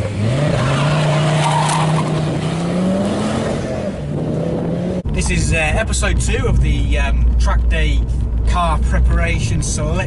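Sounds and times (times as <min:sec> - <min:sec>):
car engine accelerating: 0:00.0 - 0:10.0.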